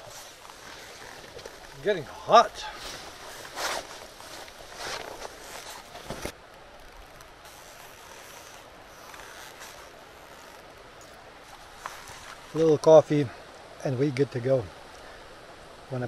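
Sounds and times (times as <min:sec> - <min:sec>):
scuffing or rustling noises: 0:00.0 - 0:06.4
faint outdoor hiss: 0:00.0 - 0:16.0.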